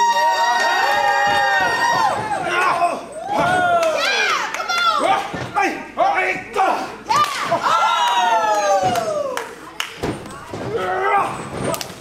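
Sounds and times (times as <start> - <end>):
spectators shouting: 0.0 - 5.2.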